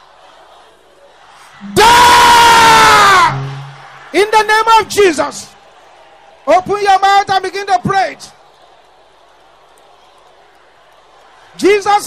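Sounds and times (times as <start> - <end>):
man shouting into microphone: 1.6 - 5.5, 6.4 - 8.3, 11.6 - 12.0.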